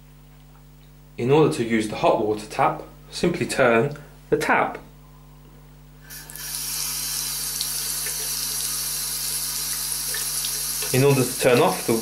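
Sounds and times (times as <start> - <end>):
tap water pouring into basin: 6.1 - 12.0.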